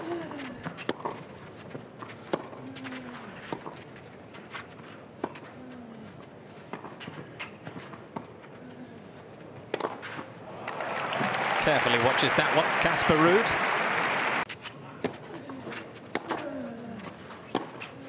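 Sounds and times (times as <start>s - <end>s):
players grunting: 10.5s - 14.4s.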